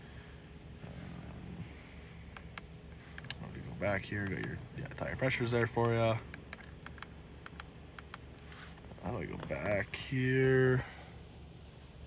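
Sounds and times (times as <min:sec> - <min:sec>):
steering wheel button clicks: 0:05.6 - 0:08.2.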